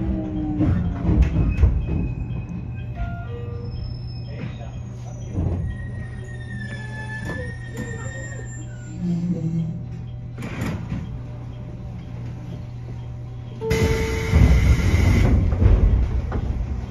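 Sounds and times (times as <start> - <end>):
train doors opening rush: 0.0 - 8.2, 10.4 - 11.4, 13.6 - 16.9
train humming: 0.0 - 16.9
short tone: 13.6 - 15.3.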